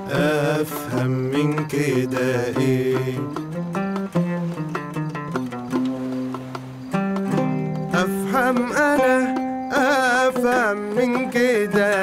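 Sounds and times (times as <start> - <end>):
man singing: 0.0 - 3.6, 7.9 - 12.0
oud plucked notes: 0.0 - 12.0.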